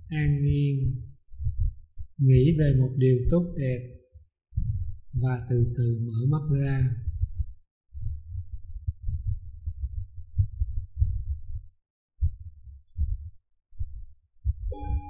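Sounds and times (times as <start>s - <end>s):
muffled thumps and rumbling: 0.2s - 2.1s, 4.6s - 5.2s, 7.0s - 14.7s
singing bowl ringing: 14.7s - 15.0s.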